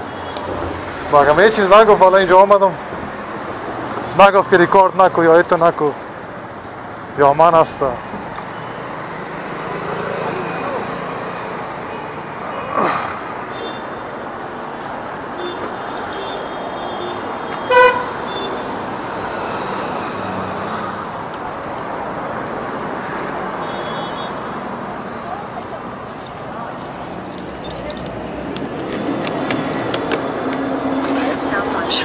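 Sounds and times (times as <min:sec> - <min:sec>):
street traffic: 0:00.0 - 0:32.0
vehicle horn toot: 0:16.8 - 0:18.6.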